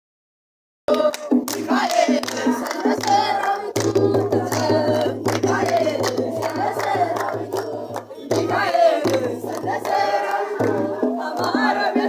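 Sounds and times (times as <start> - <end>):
group singing a hymn: 0.9 - 12.0
rhythmic hand clapping: 0.9 - 12.0.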